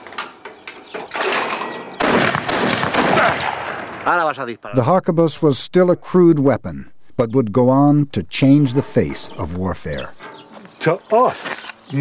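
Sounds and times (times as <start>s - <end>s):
gunshot: 2.0s - 4.0s.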